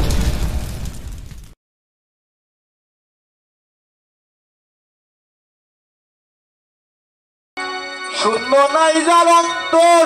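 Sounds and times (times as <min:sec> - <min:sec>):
explosion rumble with crackle: 0:00.0 - 0:01.6.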